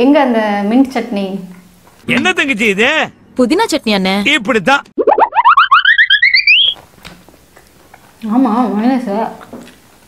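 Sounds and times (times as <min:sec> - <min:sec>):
warbling tone rising in pitch: 0:05.0 - 0:06.8.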